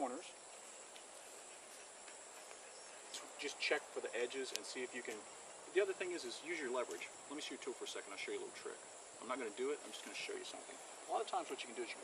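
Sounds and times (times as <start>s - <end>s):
insect chirring: 0.0s - 12.0s.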